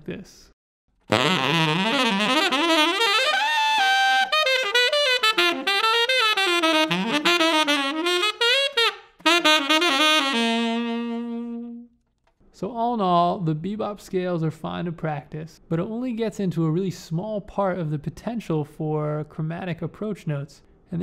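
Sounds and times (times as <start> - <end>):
tenor saxophone jazz line: 1.1 - 11.9.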